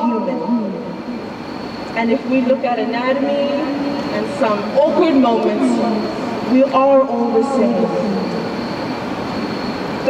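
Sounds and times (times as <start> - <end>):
steady rushing noise: 0.5 - 10.0.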